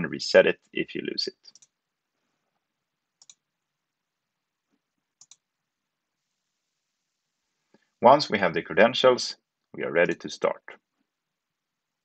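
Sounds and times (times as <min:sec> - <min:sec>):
computer mouse clicks: 0:01.5 - 0:01.8, 0:03.2 - 0:03.4, 0:05.2 - 0:05.4.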